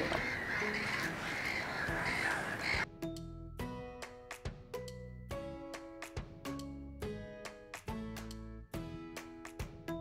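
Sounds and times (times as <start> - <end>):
geese honking: 0.0 - 2.9.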